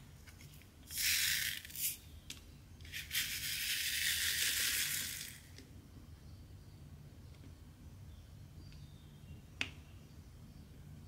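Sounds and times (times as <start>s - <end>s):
beads rattling in plastic tray: 0.9s - 2.0s, 2.9s - 5.4s.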